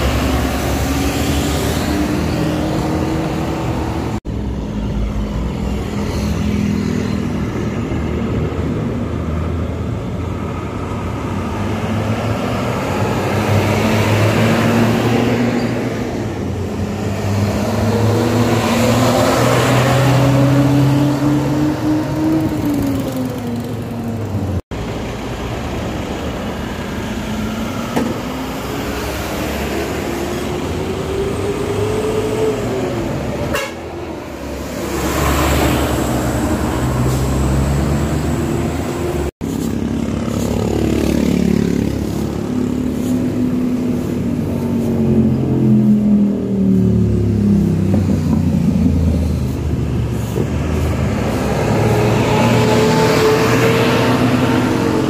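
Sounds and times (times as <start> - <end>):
diesel bus engines passing: 0.0 - 55.0
road and tyre noise: 0.0 - 55.0.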